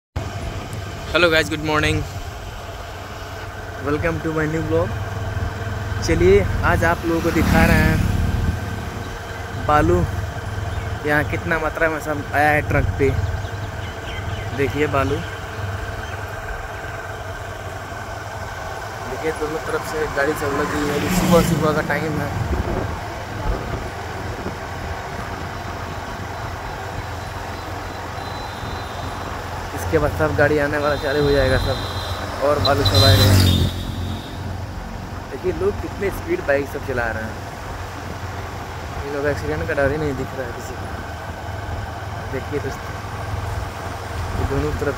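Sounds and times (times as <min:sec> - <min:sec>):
road and wind noise: 0:00.2 - 0:44.9
vehicle engine idling: 0:00.2 - 0:44.9.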